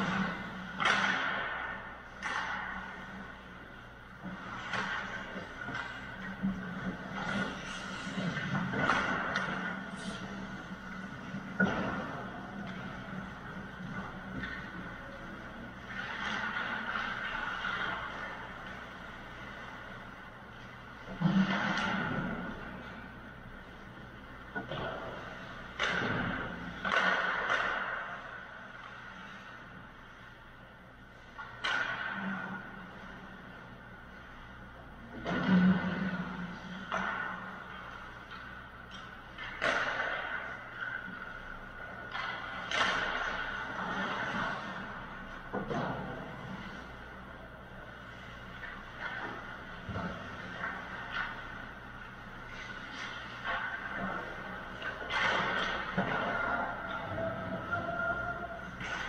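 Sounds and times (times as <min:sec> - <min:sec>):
pucks hitting the boards: 0:00.0 - 0:15.0, 0:24.5 - 0:29.0, 0:31.4 - 0:33.0, 0:35.2 - 0:47.0, 0:48.2 - 0:59.0
hockey sticks striking pucks: 0:00.0 - 0:29.8, 0:31.2 - 0:34.4, 0:35.1 - 0:59.0
steady hum: 0:00.0 - 0:59.0.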